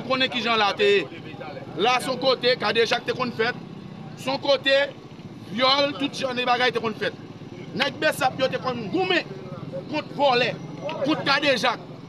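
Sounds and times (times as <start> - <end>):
man speaking: 0.0 - 3.6, 4.2 - 11.9.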